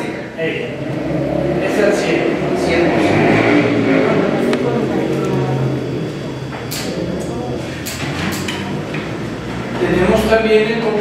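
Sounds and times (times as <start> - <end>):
low rumble: 0.5 - 9.7
man reading aloud: 9.8 - 11.0.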